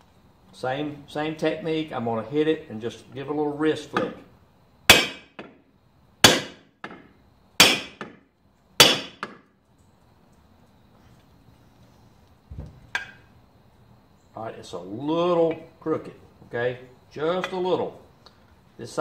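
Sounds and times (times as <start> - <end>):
hammer tapping steel punch: 4.9 - 5.5.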